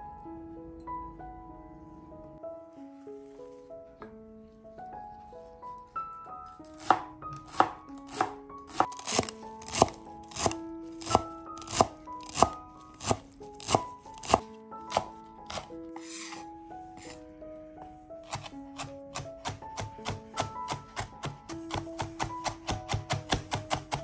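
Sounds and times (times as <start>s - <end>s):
soft background music: 0.0s - 24.0s
knife chopping on wooden board: 6.8s - 16.4s, 18.2s - 24.0s.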